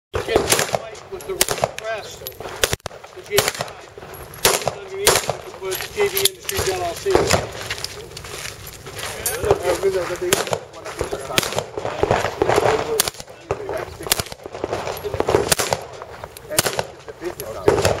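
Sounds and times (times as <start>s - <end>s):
pistol shots: 0.2s - 7.6s, 9.4s - 18.0s
handgun shots: 4.4s - 5.5s, 10.3s - 14.4s, 15.2s - 17.0s.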